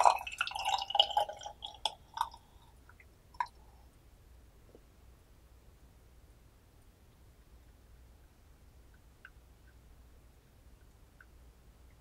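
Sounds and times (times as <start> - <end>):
tea pouring into pitcher: 0.0 - 3.6
liquid dripping: 0.0 - 3.7.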